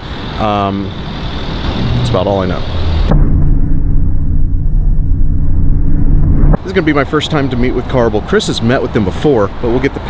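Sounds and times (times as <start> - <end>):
deep bass sting: 1.6 - 7.8.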